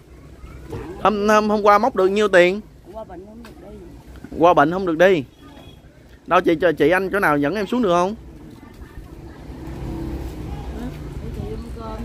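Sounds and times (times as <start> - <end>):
faint voices: 0.0 - 12.0
vehicle engine rumbling: 0.0 - 12.0.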